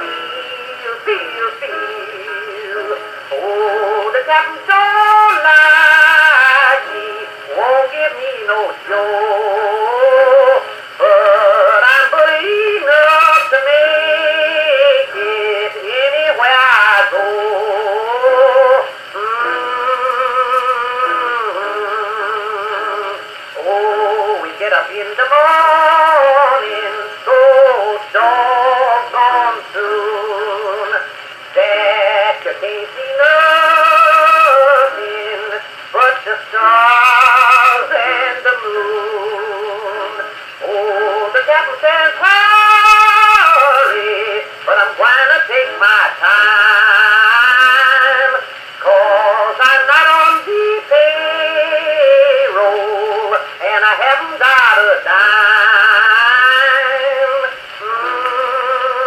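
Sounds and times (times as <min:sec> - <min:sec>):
old country music on phonograph: 0:00.0 - 0:59.0.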